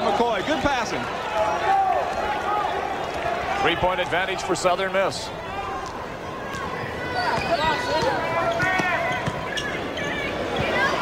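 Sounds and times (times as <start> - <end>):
arena crowd noise: 0.0 - 11.0
sneakers squeaking on hardwood: 6.5 - 11.0.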